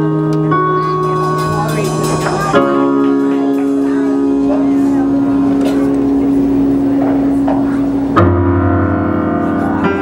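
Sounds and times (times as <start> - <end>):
rock band sustained chord: 0.0 - 10.0
cymbals wash: 0.7 - 8.2.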